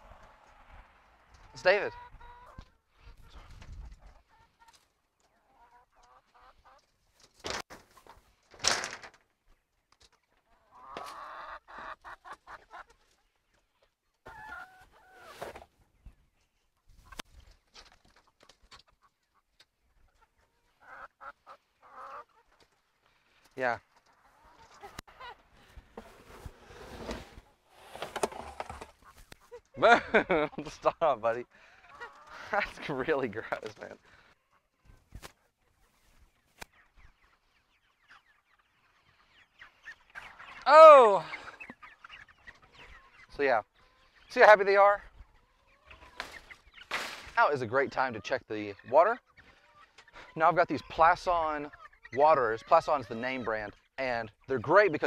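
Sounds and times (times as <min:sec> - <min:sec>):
hens clucking: 0:00.0 - 0:08.5, 0:09.2 - 0:55.0.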